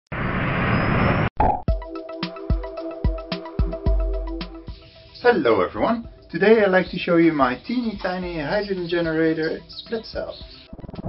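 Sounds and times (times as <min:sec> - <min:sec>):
electronic music with deep bass: 0:01.7 - 0:11.0.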